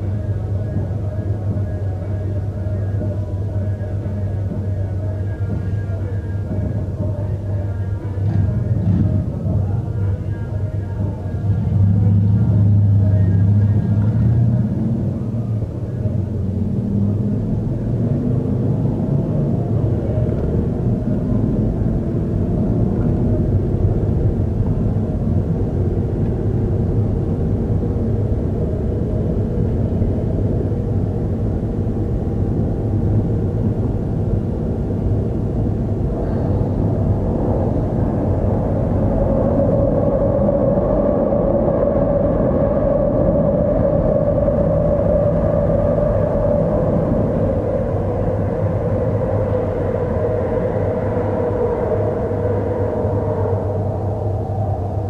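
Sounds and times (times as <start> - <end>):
car road and engine noise: 0.0 - 55.0
steady higher hum: 0.0 - 55.0.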